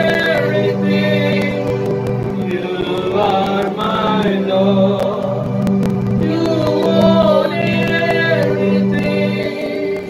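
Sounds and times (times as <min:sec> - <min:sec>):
men singing a hymn: 0:00.0 - 0:05.6, 0:06.2 - 0:10.0
musical accompaniment: 0:00.0 - 0:10.0.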